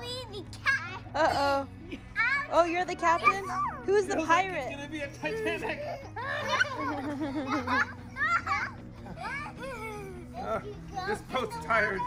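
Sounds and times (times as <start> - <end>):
children squealing and laughing: 1.9 - 4.1, 5.2 - 12.0.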